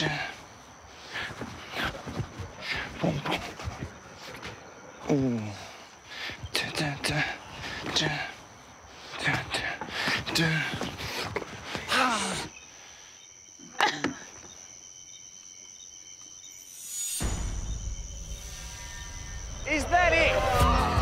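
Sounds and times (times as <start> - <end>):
crickets chirping: 0.0 - 21.0.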